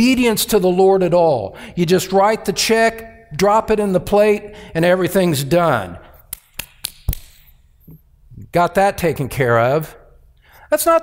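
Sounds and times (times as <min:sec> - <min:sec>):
hands slapping together: 0:06.2 - 0:07.6.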